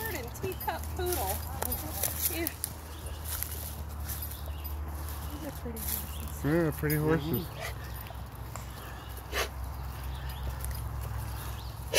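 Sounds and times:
animal snort: 0:09.2 - 0:09.6.

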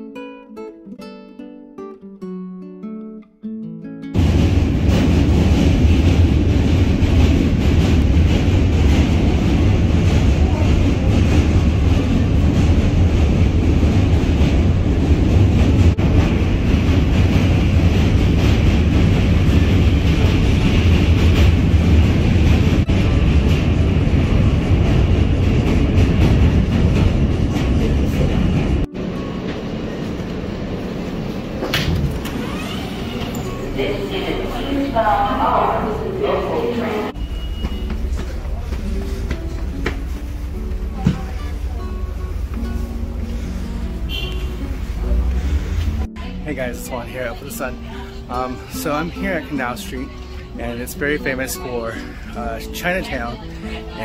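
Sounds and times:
subway station noise: 0:04.1 - 0:54.0
subway train wheels rumbling on rails: 0:04.1 - 0:54.0.

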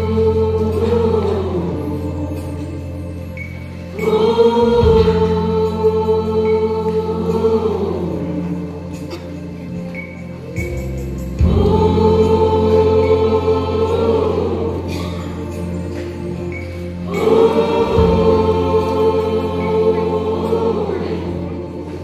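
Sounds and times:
choir singing held chords: 0:00.0 - 0:22.0.

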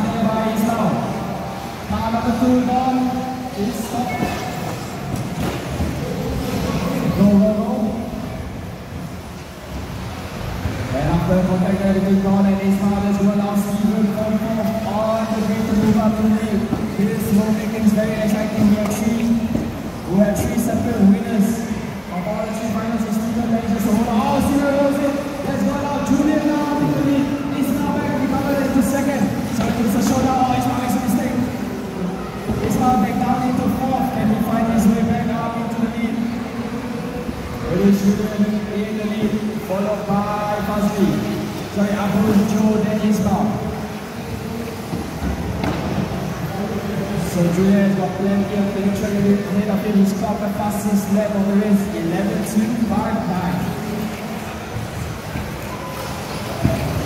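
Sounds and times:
people's voices: 0:00.0 - 0:57.0.

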